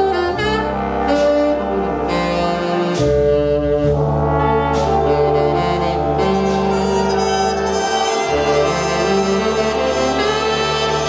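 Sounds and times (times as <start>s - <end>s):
jazz big band playing: 0.0s - 11.0s.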